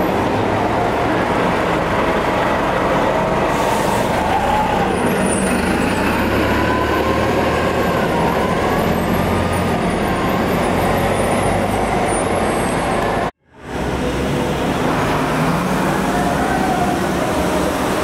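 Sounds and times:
buses passing and pulling away: 0:00.0 - 0:18.0
street traffic: 0:00.0 - 0:18.0.

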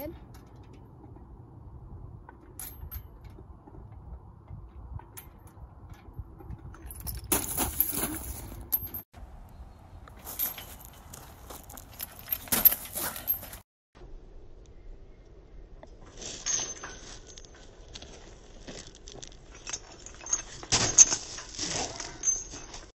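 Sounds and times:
swing chains jangling: 0:04.9 - 0:09.1, 0:10.1 - 0:13.6, 0:16.2 - 0:22.9
scuffing in gravel: 0:10.1 - 0:13.6.

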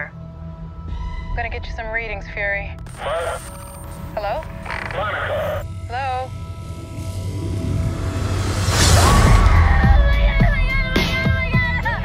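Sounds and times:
low rumbling drone: 0:00.0 - 0:10.9
warbling voice-like sounds: 0:02.9 - 0:05.6.

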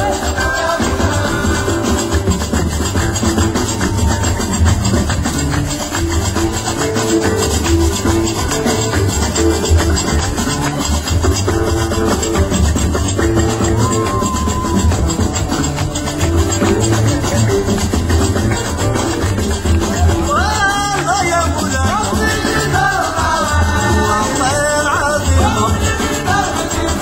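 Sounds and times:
acoustic guitar: 0:00.0 - 0:27.0
deep bass line: 0:00.0 - 0:27.0
drum kit: 0:00.0 - 0:27.0.

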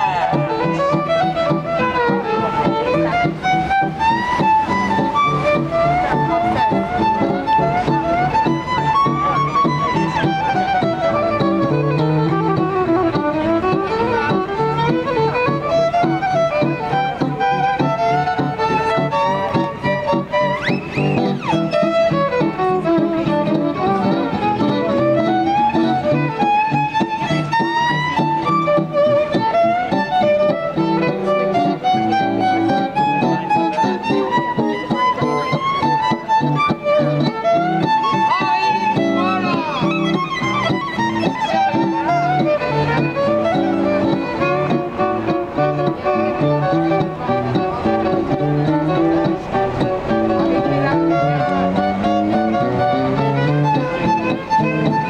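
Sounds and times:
violin melody: 0:00.0 - 0:55.0.

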